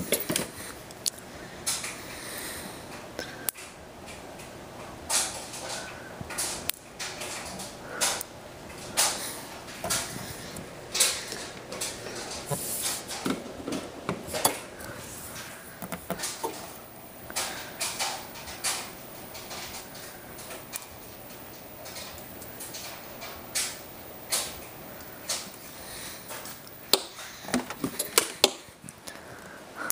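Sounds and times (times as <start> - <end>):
static sparks snapping: 15.8 - 27.4.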